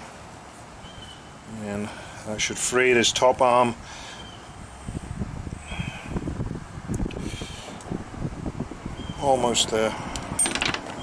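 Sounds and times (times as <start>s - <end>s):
wind rumbling on microphone: 3.7s - 11.0s.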